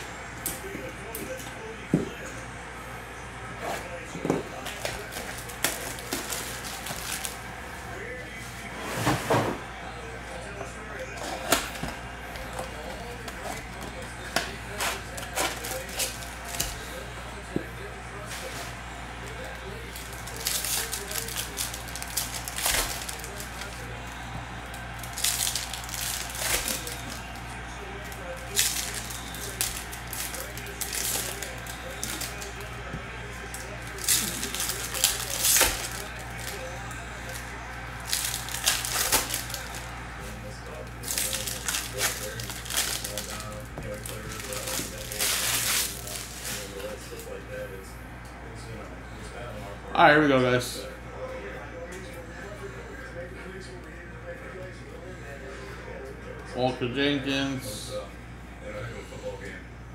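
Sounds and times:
foil wrappers torn and crinkled: 4.5 - 7.5, 11.1 - 17.0, 18.2 - 47.3.

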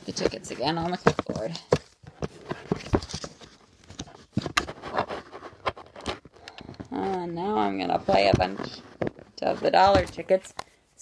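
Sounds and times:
paper rustling: 0.0 - 10.4.

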